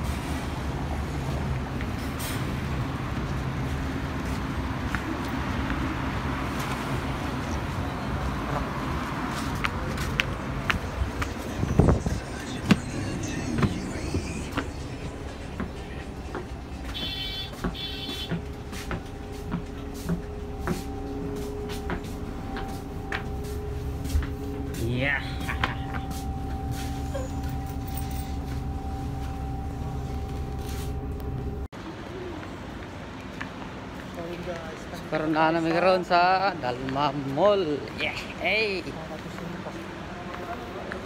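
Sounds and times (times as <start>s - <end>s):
bus diesel engine humming: 0.0s - 41.0s.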